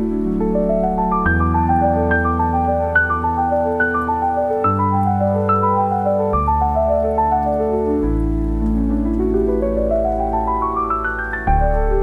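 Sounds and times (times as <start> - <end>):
slow solo piano: 0.0 - 12.0
steady rain: 0.0 - 12.0.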